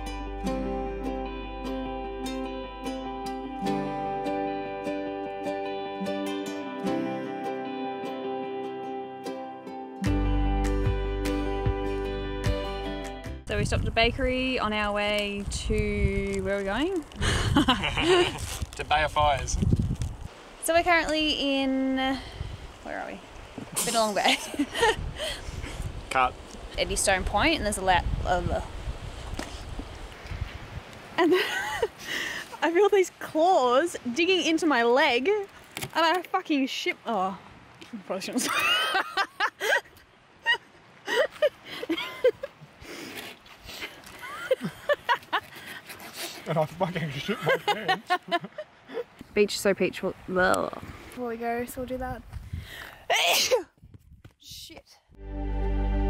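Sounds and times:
wind buffeting microphone: 13.4s - 23.8s, 24.4s - 31.2s, 50.0s - 53.0s, 53.7s - 54.4s
faint rustle: 14.8s - 26.8s, 28.6s - 31.2s.

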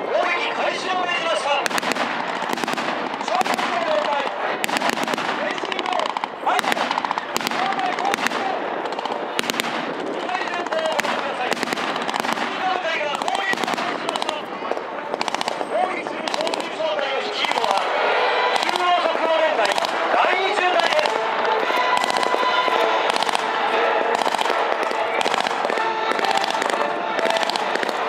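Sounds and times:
machine gun firing bursts: 1.7s - 3.9s, 4.6s - 14.4s, 15.1s - 16.7s, 24.2s - 28.0s.

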